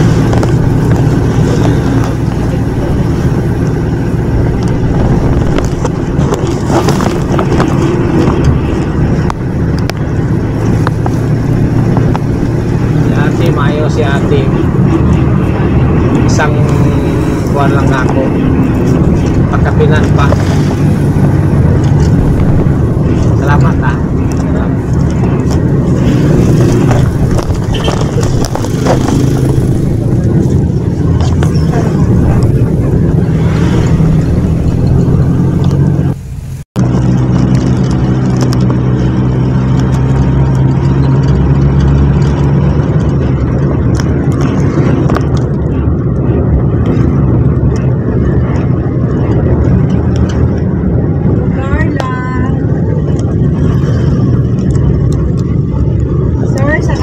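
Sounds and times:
passengers talking: 0.0s - 9.4s, 12.9s - 36.2s, 44.1s - 57.0s
vehicle engine and road drone: 0.0s - 57.0s.

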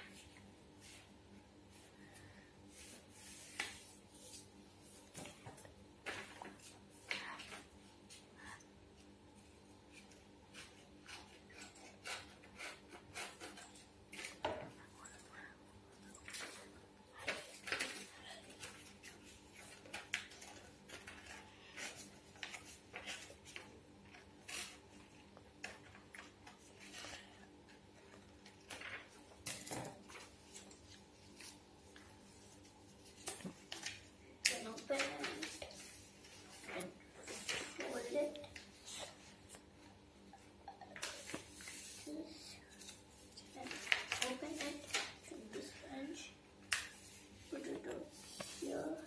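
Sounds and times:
paper being handled and folded: 1.7s - 8.3s, 9.0s - 14.5s, 16.1s - 49.0s
scissors cutting paper: 10.5s - 14.4s, 17.2s - 24.9s.

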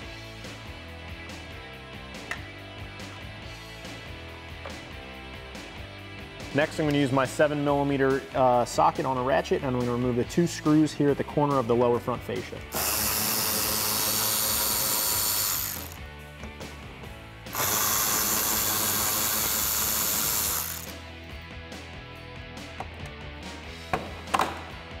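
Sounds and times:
electric ratchet motor running: 12.7s - 16.0s, 17.5s - 21.0s.

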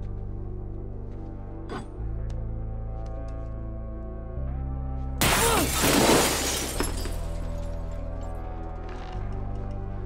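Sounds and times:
low film score music: 0.0s - 5.8s, 6.4s - 10.0s
glass breaking: 5.2s - 7.7s.

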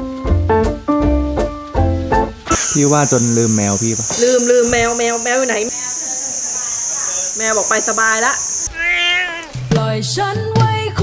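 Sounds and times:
cat meowing: 2.5s - 3.0s, 6.2s - 9.7s.

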